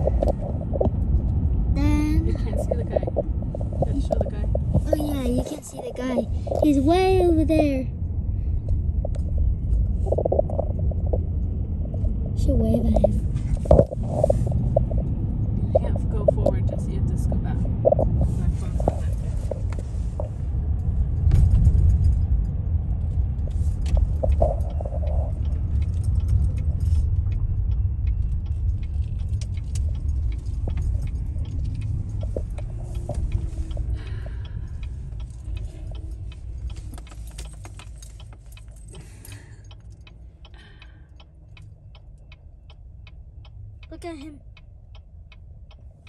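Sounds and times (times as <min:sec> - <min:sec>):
freight train rumble: 0:00.0 - 0:29.3.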